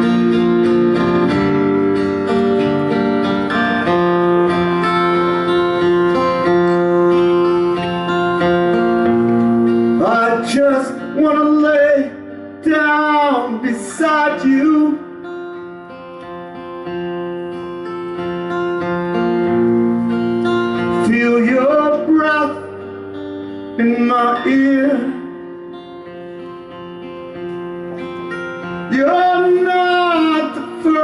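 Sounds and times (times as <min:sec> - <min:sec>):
acoustic guitar strumming: 0:00.0 - 0:31.0.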